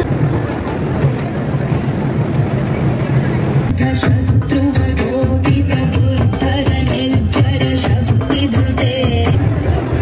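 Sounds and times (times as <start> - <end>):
engine rumbling: 0.0 - 10.0.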